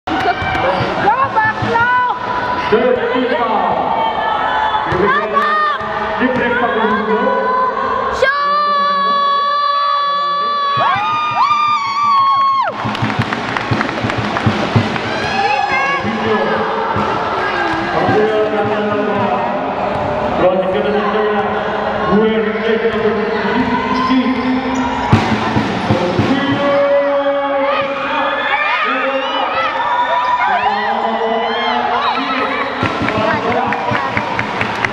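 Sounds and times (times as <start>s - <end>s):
crowd noise: 0.0s - 34.9s
players and spectators shouting: 0.1s - 13.2s, 14.8s - 34.9s.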